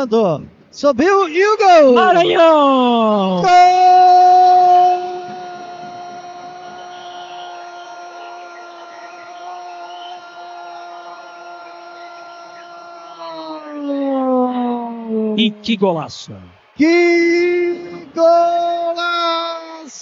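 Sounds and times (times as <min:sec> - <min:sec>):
commentator's drawn-out goal cry: 0:01.6 - 0:16.1.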